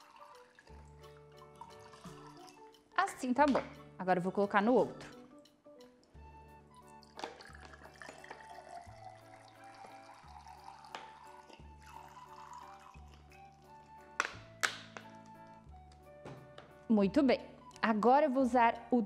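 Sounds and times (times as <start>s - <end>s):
liquid poured into a glass: 0.0s - 2.9s, 6.8s - 14.1s.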